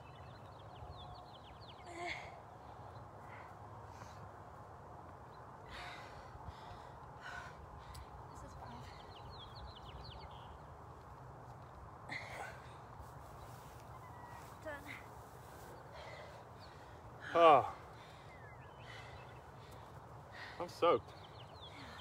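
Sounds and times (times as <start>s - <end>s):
person breathing hard: 5.6s - 8.2s.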